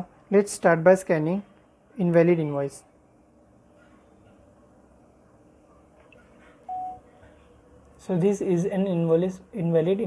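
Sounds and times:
short electronic beep: 0:06.7 - 0:07.0.

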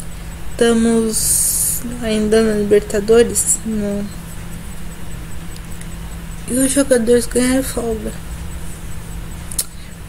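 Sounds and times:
faint background hiss: 0:00.0 - 0:10.0
steady low hum: 0:00.0 - 0:10.0.

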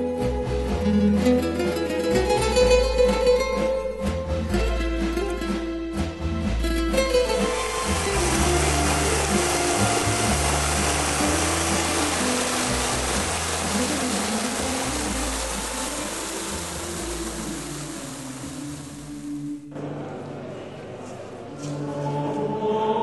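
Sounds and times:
background music low notes: 0:00.0 - 0:19.9
churning splashing water: 0:07.0 - 0:19.6.

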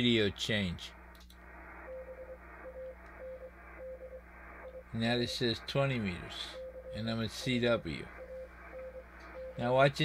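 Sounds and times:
receiver hum and band noise: 0:00.0 - 0:10.0
morse code tone: 0:01.9 - 0:09.8.

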